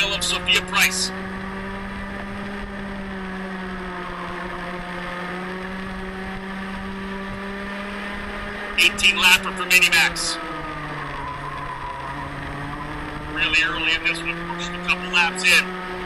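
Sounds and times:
kart engine running high: 0.0s - 16.0s.

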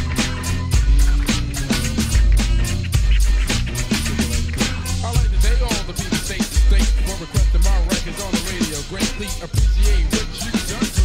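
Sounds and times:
deep bass notes: 0.0s - 11.0s
rapping over a beat: 0.0s - 11.0s.

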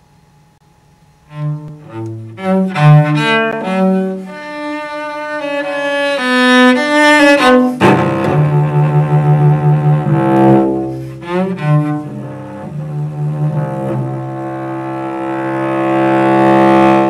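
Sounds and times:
cello playing sustained notes: 1.2s - 17.0s.

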